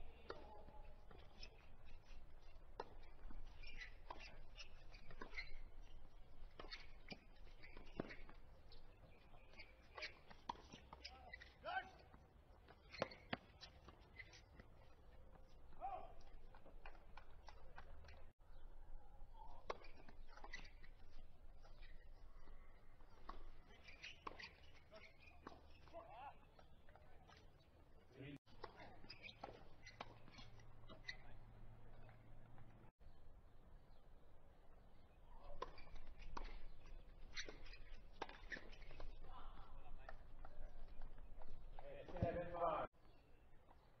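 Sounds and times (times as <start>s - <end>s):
tennis ball bouncing: 0.0s - 11.1s, 35.6s - 39.3s
racquets striking tennis ball: 0.0s - 11.5s.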